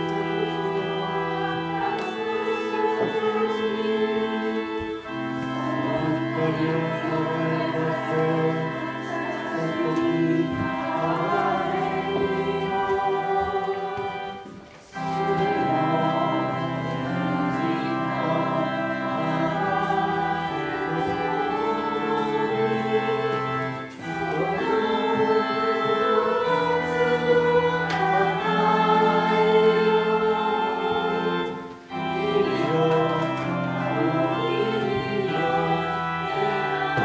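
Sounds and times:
choir singing a slow hymn: 0.0 - 37.0.

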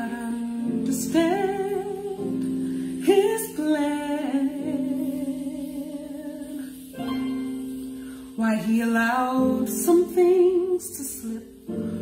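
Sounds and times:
woman singing with vibrato: 0.0 - 7.6, 8.4 - 11.6
quiet musical accompaniment: 0.0 - 12.0.

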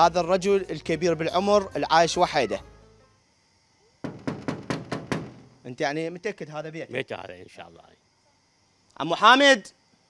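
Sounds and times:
knuckles knocking on metal door: 4.0 - 5.6.

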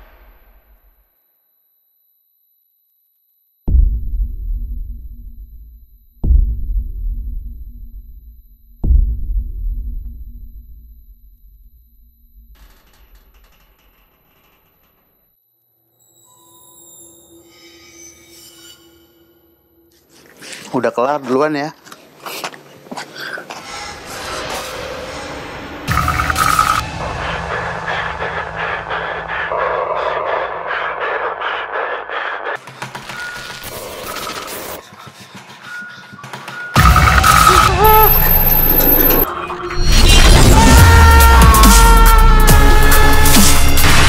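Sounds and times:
tense stuttering drone: 23.6 - 44.0.

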